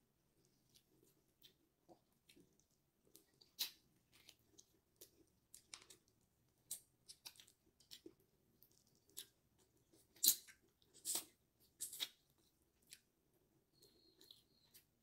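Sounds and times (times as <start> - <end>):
person biting and chewing food: 8.7 - 13.0.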